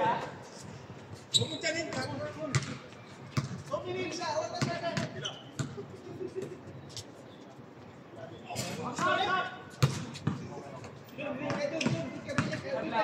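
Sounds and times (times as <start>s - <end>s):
basketball bouncing on hard court: 1.9s - 2.8s, 3.4s - 3.6s, 4.6s - 5.8s, 9.8s - 10.4s, 11.5s - 12.6s.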